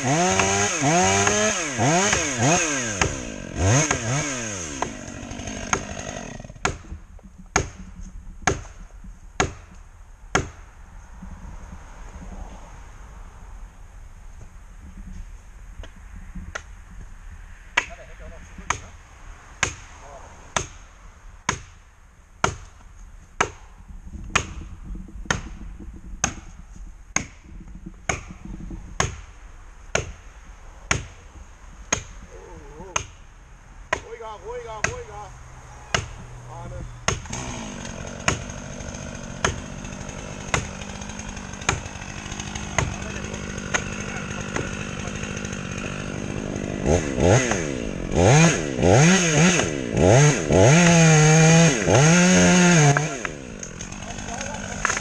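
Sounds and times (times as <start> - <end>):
chainsaw idling and revving: 0.0 - 6.9, 35.9 - 55.0
wedge struck with sharp blows: 0.3 - 8.8, 9.4 - 10.6, 19.6 - 19.9, 20.5 - 20.8, 21.5 - 21.8, 24.3 - 30.2, 30.9 - 31.2, 31.9 - 32.3, 32.9 - 33.2, 33.9 - 35.2, 35.9 - 36.3, 37.0 - 38.7, 39.4 - 47.8.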